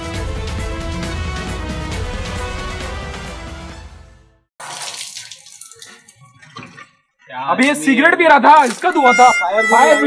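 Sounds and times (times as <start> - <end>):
background music: 0.0 - 4.5
water splashing: 4.6 - 6.9
water trickling and dripping: 4.6 - 7.0.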